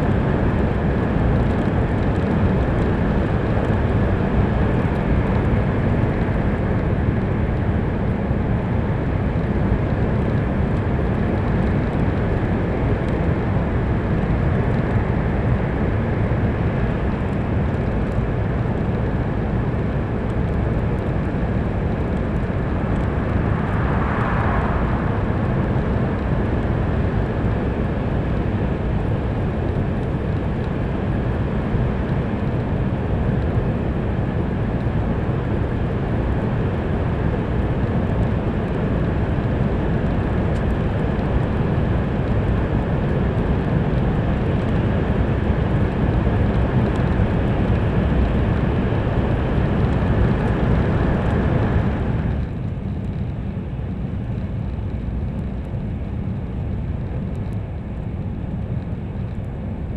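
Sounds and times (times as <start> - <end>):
train rumble and rush: 17.3 - 30.8.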